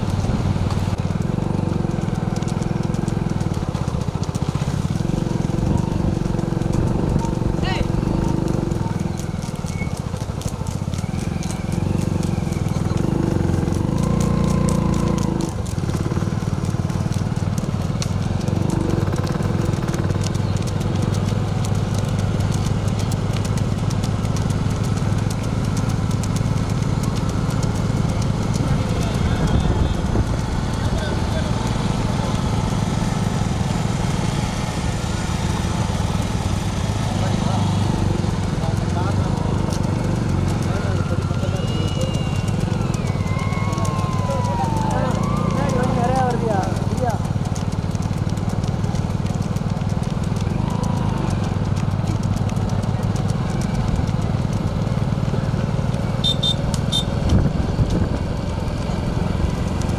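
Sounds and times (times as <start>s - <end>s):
motorcycle engines running: 0.0s - 59.9s
wind rushing over microphone: 57.1s - 58.5s.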